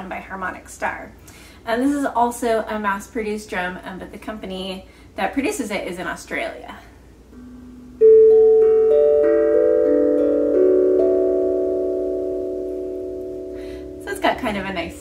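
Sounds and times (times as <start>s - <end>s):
steel tongue drum notes: 7.3s - 15.0s.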